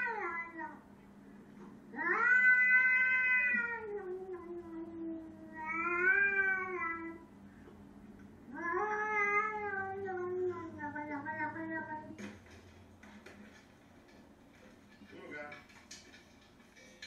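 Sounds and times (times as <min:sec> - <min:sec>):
cat meowing: 0:01.9 - 0:07.2, 0:08.5 - 0:12.1.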